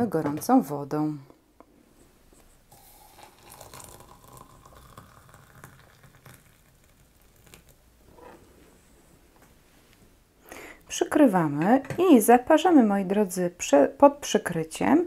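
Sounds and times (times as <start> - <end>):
hot water pouring into mug: 2.7 - 7.8.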